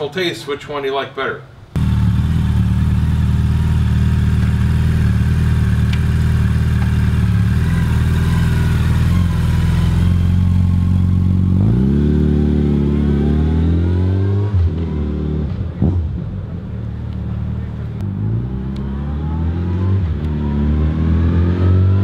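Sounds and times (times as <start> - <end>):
motorcycle engine idling and revving: 1.8 - 22.0.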